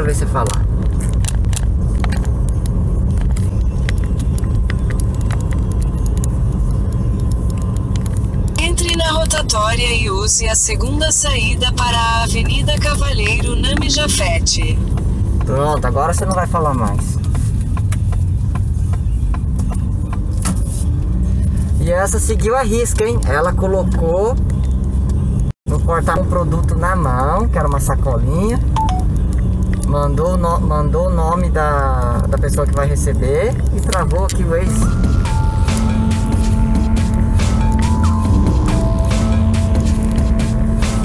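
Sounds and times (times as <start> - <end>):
car road noise rumble: 0.0 - 41.0.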